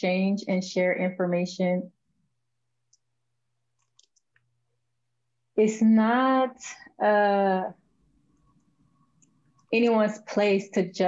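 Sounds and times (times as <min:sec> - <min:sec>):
tiny clicks: 0:03.8 - 0:04.5.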